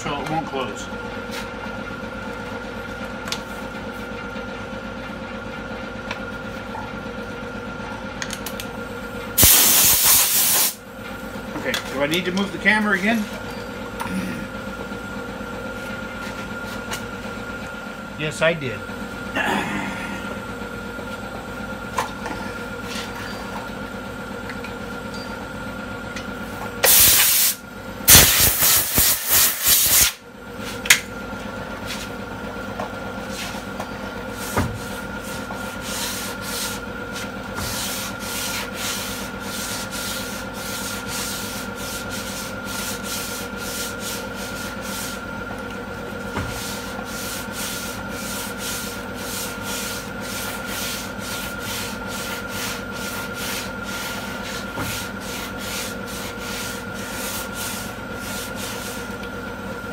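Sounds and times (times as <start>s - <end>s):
sandpaper rubbing on car panel: 35.2s - 45.2s, 46.5s - 59.1s.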